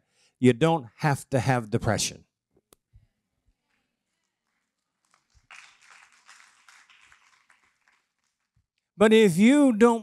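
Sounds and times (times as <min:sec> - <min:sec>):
audience clapping: 0:04.2 - 0:08.7.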